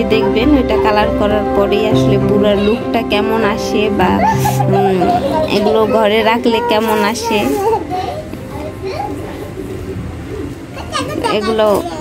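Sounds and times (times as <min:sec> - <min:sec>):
children talking and playing: 0:00.0 - 0:12.0.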